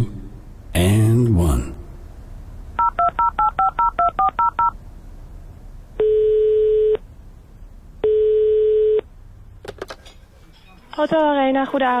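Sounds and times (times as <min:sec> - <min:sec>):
touch-tone dialing beeps: 0:02.8 - 0:04.7
telephone ringing tones: 0:02.8 - 0:04.8, 0:06.0 - 0:07.0, 0:08.0 - 0:09.1.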